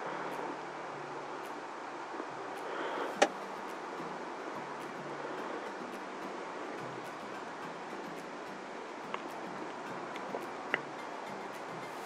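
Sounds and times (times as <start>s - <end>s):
background hiss: 0.0s - 12.0s
low hum: 0.0s - 12.0s.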